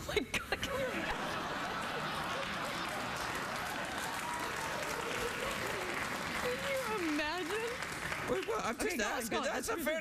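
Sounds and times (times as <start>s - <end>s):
audience applauding: 1.1s - 9.3s.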